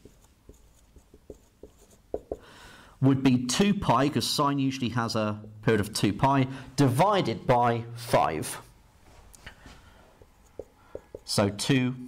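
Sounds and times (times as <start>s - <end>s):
marker scratching on whiteboard: 0.0s - 2.5s, 10.2s - 11.4s
marker tapping on whiteboard: 0.0s - 2.5s, 10.2s - 11.4s.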